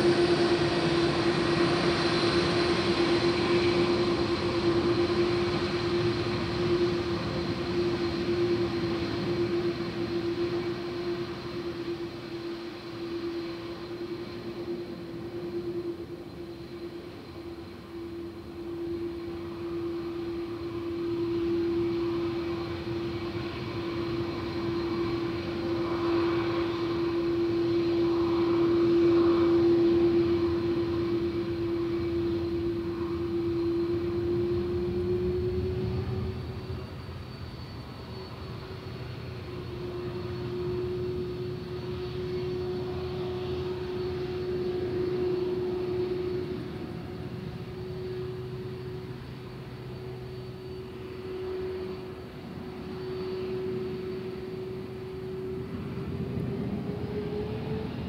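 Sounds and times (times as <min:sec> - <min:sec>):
jet engines droning: 0:00.0 - 0:58.0.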